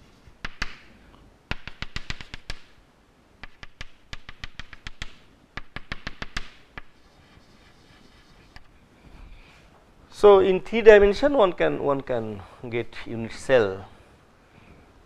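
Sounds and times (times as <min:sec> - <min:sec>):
chalk tapping on a blackboard: 0:00.0 - 0:00.9, 0:01.5 - 0:02.8, 0:03.4 - 0:08.7.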